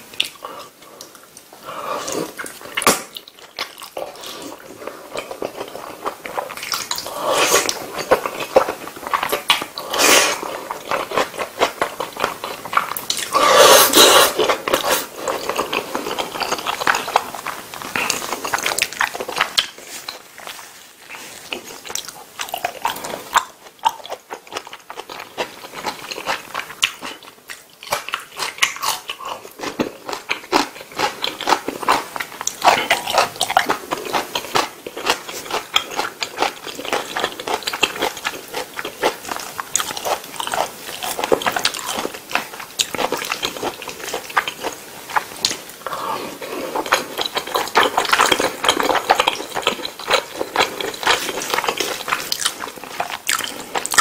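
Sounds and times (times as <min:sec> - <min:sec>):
wet chewing clicks and smacks: 0:46.8 - 0:54.0.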